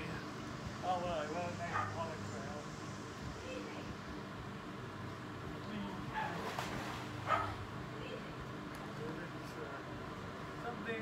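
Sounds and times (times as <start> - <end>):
dog barking: 1.7 - 2.0, 7.3 - 7.6.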